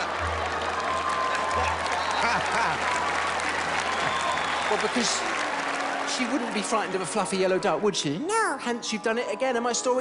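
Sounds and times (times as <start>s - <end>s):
audience applauding: 0.0s - 8.0s
audience laughing: 1.7s - 3.0s.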